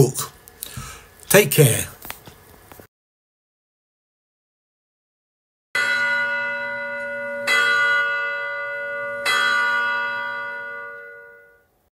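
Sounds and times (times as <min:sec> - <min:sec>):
bell ringing: 0:05.8 - 0:11.6.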